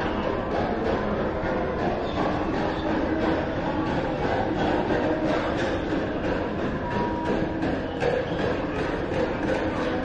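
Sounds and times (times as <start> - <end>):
rumbling indoor background noise: 0.0 - 10.0.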